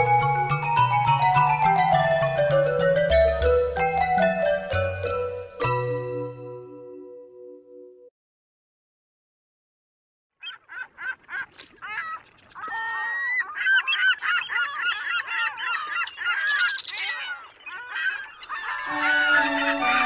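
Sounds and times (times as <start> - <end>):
music: 0.0 - 8.1, 18.9 - 20.0
gulls calling: 10.4 - 20.0.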